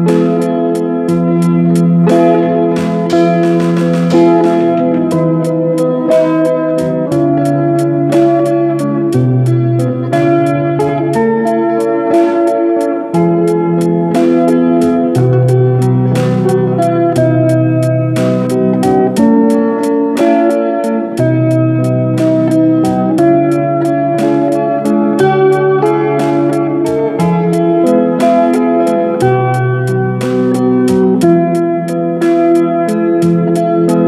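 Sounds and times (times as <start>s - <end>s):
fingerstyle acoustic guitar: 0.0s - 34.0s.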